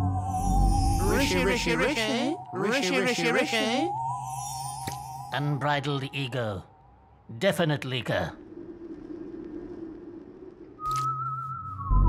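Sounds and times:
wavering theremin-like tone: 0.0 - 5.3.

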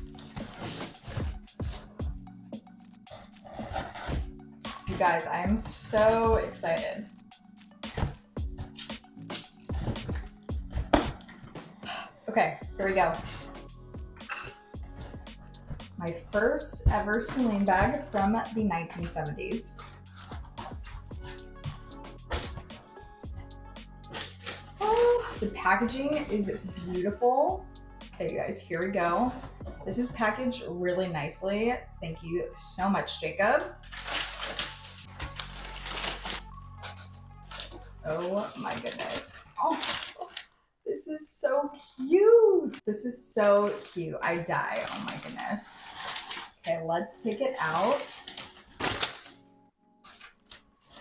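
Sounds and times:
background music: 0.0 - 51.0
cardboard and tissue paper rustling: 15.0 - 21.4, 24.1 - 27.0, 33.8 - 40.5, 43.5 - 49.4, 50.0 - 51.0.

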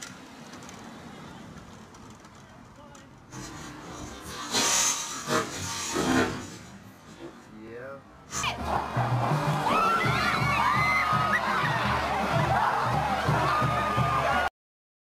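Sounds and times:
street traffic: 0.0 - 14.5
people's voices: 7.4 - 14.5.

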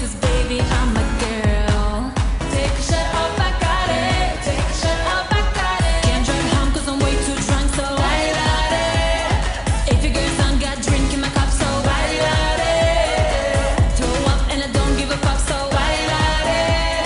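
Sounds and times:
dance beat: 0.0 - 17.0
woman singing pop song: 0.0 - 17.0.

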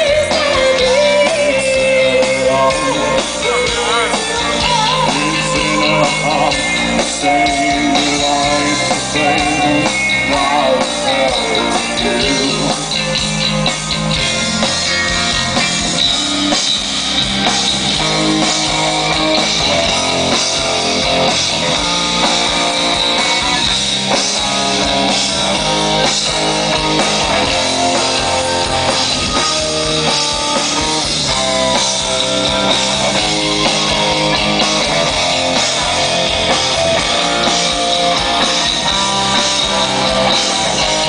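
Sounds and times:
distorted electric guitars: 0.0 - 41.0
drum kit: 0.0 - 41.0.

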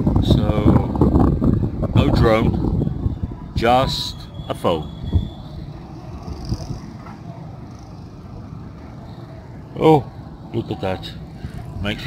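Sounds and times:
distant street traffic rumble: 0.0 - 12.0.

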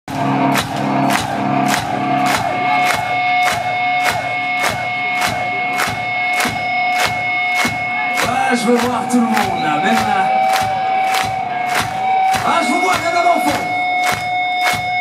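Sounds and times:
hard rock band playing live: 0.1 - 15.0
pulsing bass line: 0.1 - 15.0
drum beat: 0.2 - 15.0.

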